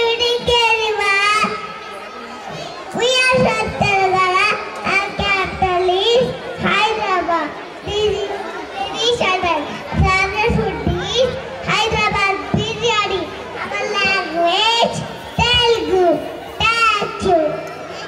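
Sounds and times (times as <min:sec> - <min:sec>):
child speaking into a microphone: 0:00.0 - 0:18.0.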